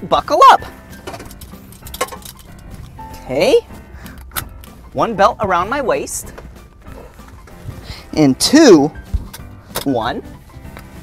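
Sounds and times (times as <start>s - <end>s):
faint background music: 0.0s - 11.0s
harness buckle and straps clinking: 0.8s - 3.4s, 9.0s - 10.0s
buckle clicking: 0.9s - 3.0s, 4.1s - 4.8s, 9.2s - 9.9s.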